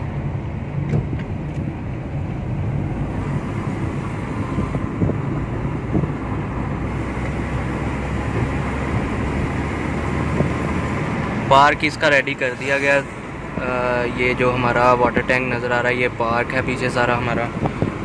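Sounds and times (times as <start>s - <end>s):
car engine and road rumble: 0.0s - 18.0s.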